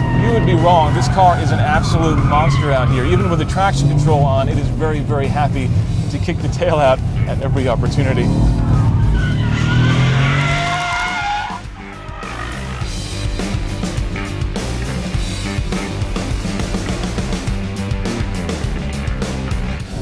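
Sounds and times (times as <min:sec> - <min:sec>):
tyres squealing: 0:00.0 - 0:05.6, 0:06.8 - 0:13.0
car noise: 0:00.0 - 0:20.0
music with steady beat: 0:11.0 - 0:20.0.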